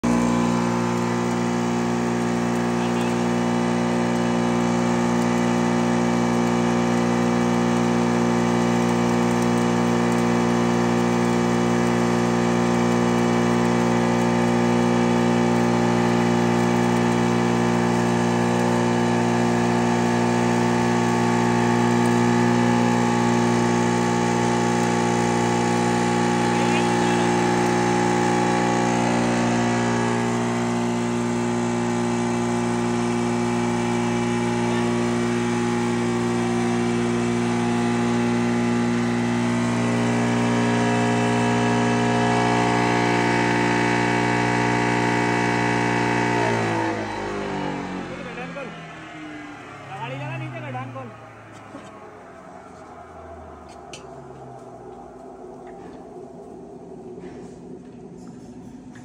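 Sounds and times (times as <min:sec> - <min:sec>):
grain pouring into hopper: 0:00.0 - 0:46.8
grinding mill humming: 0:00.0 - 0:59.0.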